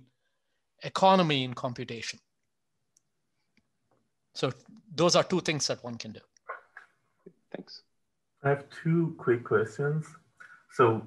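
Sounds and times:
man speaking: 0.8s - 2.3s, 4.3s - 6.8s, 8.4s - 11.0s.

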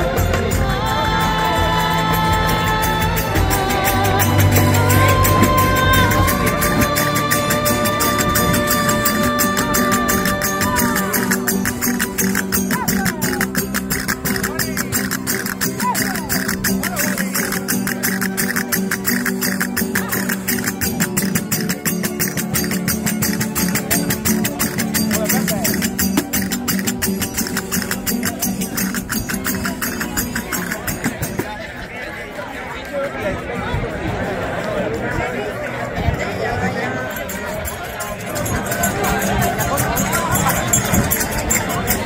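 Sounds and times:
strummed guitars: 0.0s - 31.7s, 33.1s - 42.0s
fast percussion strikes: 0.0s - 31.8s, 37.0s - 42.0s
voices: 0.0s - 42.0s.

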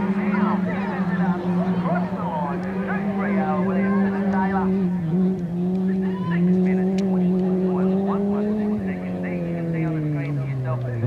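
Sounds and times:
race buggy engine high revving: 0.0s - 11.0s.

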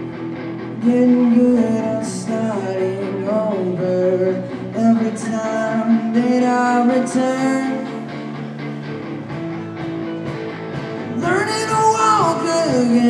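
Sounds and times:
drum kit: 0.0s - 13.0s
electric bass: 0.0s - 13.0s
electric guitars: 0.0s - 13.0s
person singing: 0.7s - 8.6s, 11.1s - 13.0s.

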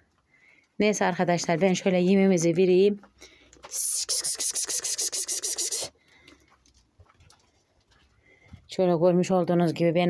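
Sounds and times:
woman calling sheep: 3.7s - 5.9s.

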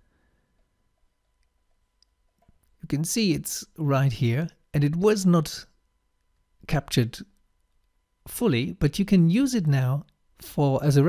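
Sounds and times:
man speaking: 2.8s - 5.7s, 6.6s - 7.3s, 8.3s - 11.0s.

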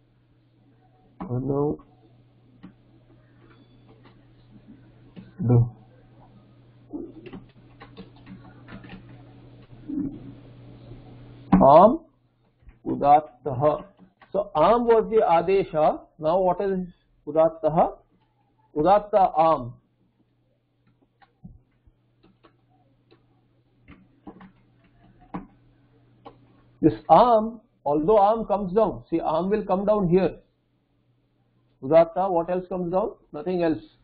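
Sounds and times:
low electrical hum: 0.0s - 34.0s
keyboard keys clicking: 7.1s - 9.7s, 22.2s - 23.2s, 23.9s - 25.6s.

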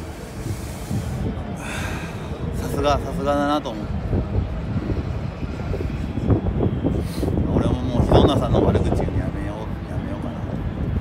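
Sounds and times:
low rumble of street noise: 0.0s - 11.0s.

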